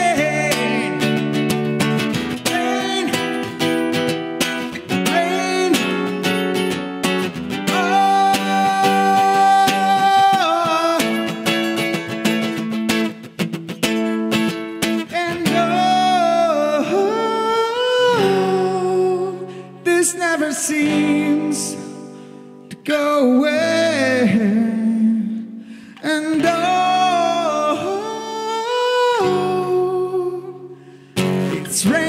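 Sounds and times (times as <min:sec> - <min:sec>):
man singing: 0:00.0 - 0:12.5, 0:14.8 - 0:32.0
acoustic guitar strummed: 0:00.0 - 0:32.0.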